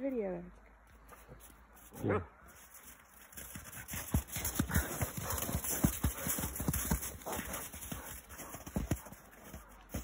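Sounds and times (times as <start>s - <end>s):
footsteps crunching in snow: 1.1s - 10.0s.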